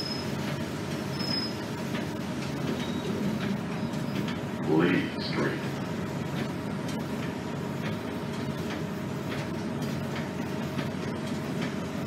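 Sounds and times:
bus interior rumble: 0.0 - 12.0.

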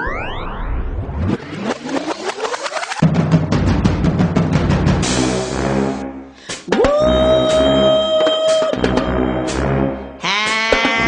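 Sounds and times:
music: 3.0 - 11.0.

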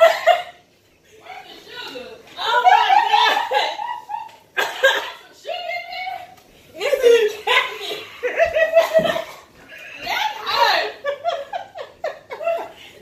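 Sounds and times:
women laughing: 0.0 - 0.6, 2.4 - 5.3, 6.8 - 13.0
women talking: 1.1 - 11.3.

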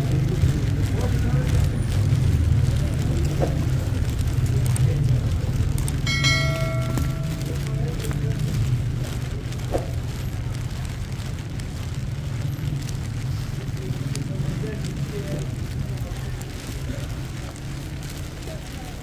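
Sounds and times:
faint voices of passers-by: 0.0 - 19.0
traffic rumble: 0.0 - 19.0.

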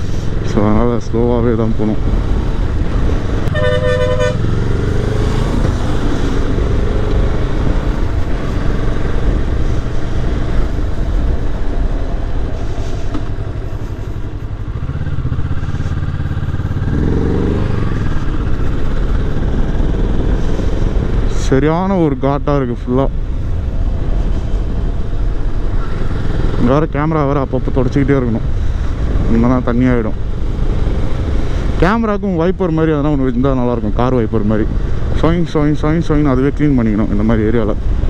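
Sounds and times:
motorcycle engine running: 2.0 - 21.3
vehicle horn toot: 3.5 - 4.5
wind rush on microphone: 4.7 - 16.0.

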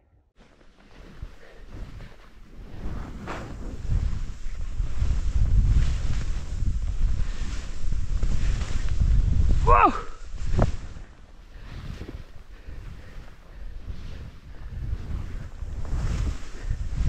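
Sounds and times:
skis hissing through powder: 0.4 - 14.2, 15.2 - 17.0
wind rushing over microphone: 1.0 - 17.0.

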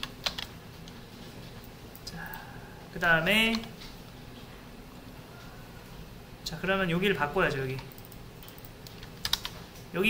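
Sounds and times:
computer keys clicking: 0.0 - 1.0, 3.4 - 4.0, 7.5 - 9.9.

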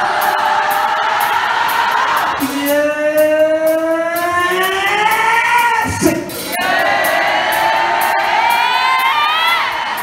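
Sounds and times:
man singing a long note: 2.4 - 6.3.

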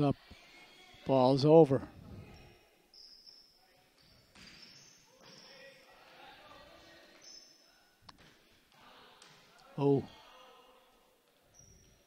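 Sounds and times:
faint calls from players: 2.2 - 12.0
sneaker squeaks on hardwood floor: 2.4 - 5.6, 7.1 - 8.3, 11.5 - 12.0.

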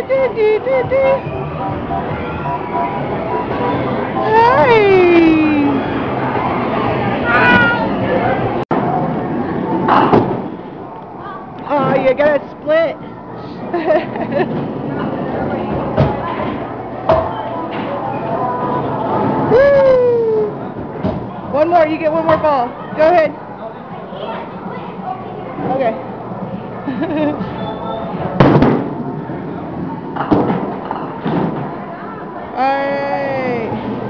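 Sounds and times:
bowling alley noise: 0.0 - 32.6, 33.4 - 34.0
background chatter: 0.0 - 34.0.

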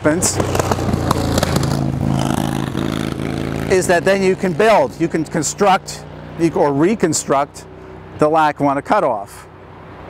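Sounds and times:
vehicle engine running steadily: 0.0 - 10.0.

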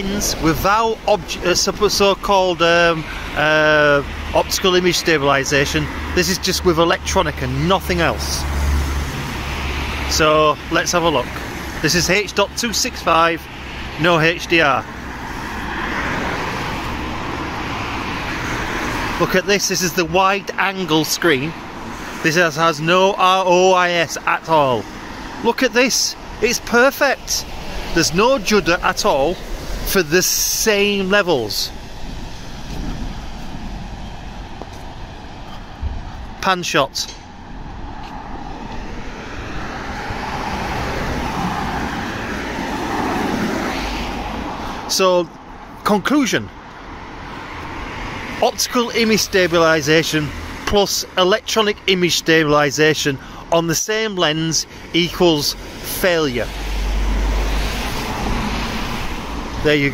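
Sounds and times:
cars passing: 0.0 - 59.9
tyres hissing on wet road: 27.2 - 34.3, 54.6 - 59.8.

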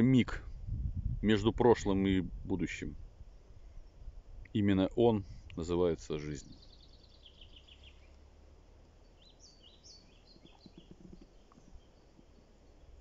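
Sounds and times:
faint songbird calls: 2.6 - 13.0.

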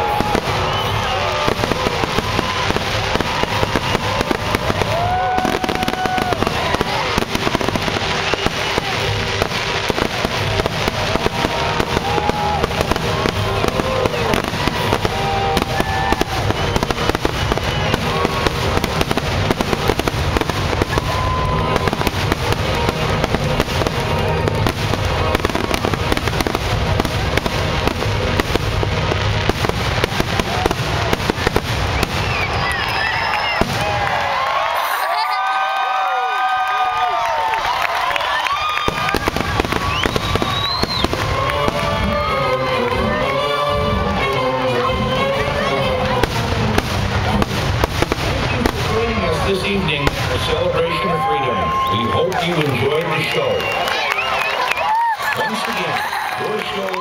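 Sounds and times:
firework whistles: 0.0 - 34.1, 38.4 - 42.3
crowd cheering: 0.0 - 57.0
crowd voices: 0.0 - 57.0
fireworks bursting and crackling: 0.0 - 57.0.

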